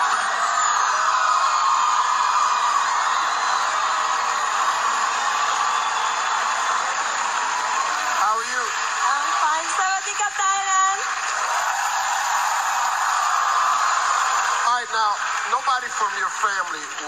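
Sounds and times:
crowd cheering and screaming: 0:00.0 - 0:17.0.

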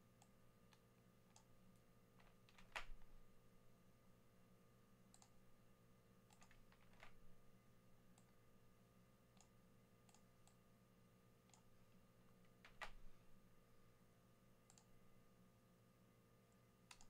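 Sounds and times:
low steady hum: 0:00.0 - 0:17.0
mouse and keyboard clicks: 0:06.3 - 0:07.2.

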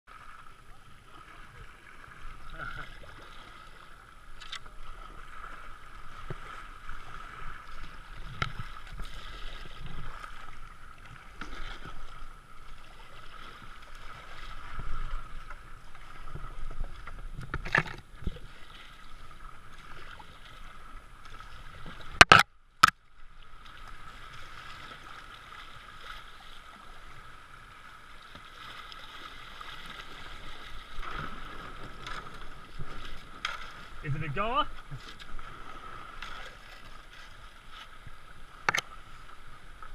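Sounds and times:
paddle splashes: 0:00.1 - 0:39.9
water rushing and splashing: 0:00.1 - 0:39.9
sharp knocks: 0:22.2 - 0:22.5.

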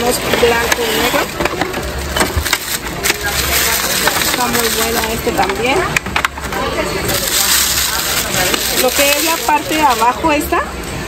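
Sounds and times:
plastic bag handled: 0:00.0 - 0:10.6
styrofoam packaging crackling: 0:00.0 - 0:10.6.

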